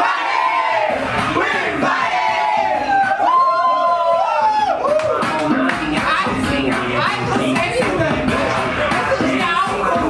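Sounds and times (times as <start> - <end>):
group shouting and singing: 0.0 - 10.0
music: 0.0 - 10.0.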